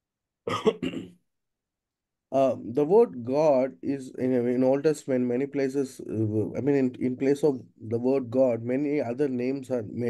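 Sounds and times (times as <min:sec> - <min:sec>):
person clearing throat: 0:00.5 - 0:01.2.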